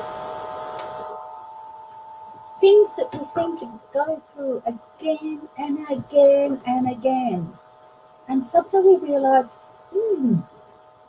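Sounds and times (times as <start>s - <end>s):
steady hum of held tones: 0.0s - 11.0s.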